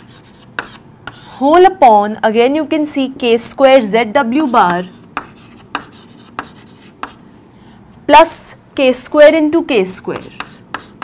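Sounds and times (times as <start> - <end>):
chalk tapping on board: 0.0 - 1.3, 4.5 - 7.2, 10.1 - 11.0
chalk scratching: 0.0 - 1.4, 4.4 - 7.2, 10.2 - 11.0.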